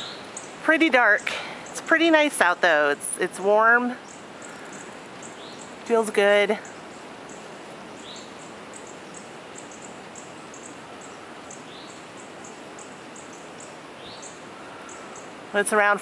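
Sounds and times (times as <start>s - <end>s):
small birds chirping: 0.0s - 16.0s
wind hiss: 0.0s - 16.0s.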